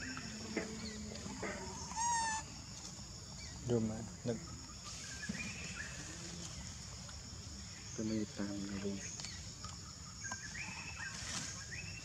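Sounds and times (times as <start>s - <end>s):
high insect drone: 0.0s - 12.0s
macaque squeaks and calls: 1.8s - 2.4s.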